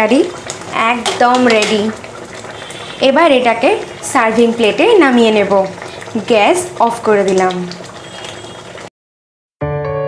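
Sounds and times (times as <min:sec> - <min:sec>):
woman speaking: 0:00.0 - 0:02.0, 0:03.0 - 0:07.7
curry bubbling: 0:00.0 - 0:08.9.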